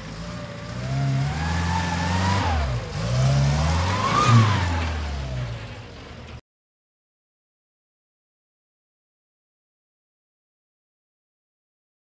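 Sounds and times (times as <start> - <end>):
truck engine revving: 0.0 - 6.4.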